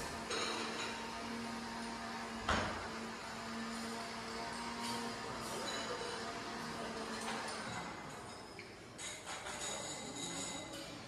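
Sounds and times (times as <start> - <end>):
dining room background noise: 0.0 - 11.0.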